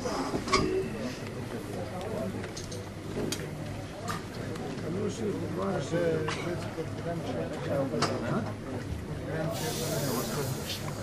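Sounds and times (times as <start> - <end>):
steady hiss: 9.5 - 11.0.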